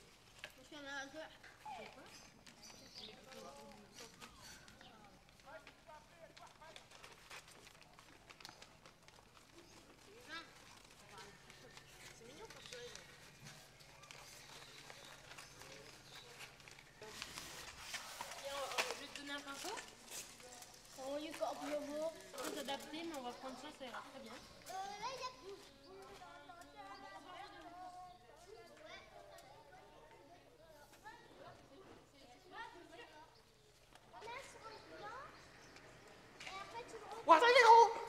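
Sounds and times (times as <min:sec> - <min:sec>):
children and adults talking: 0:00.0 - 0:38.0.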